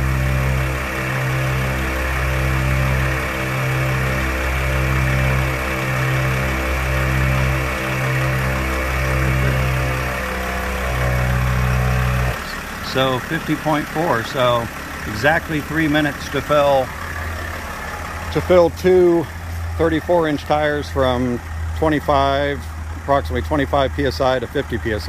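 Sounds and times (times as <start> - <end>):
air compressor running: 0.0 - 25.0.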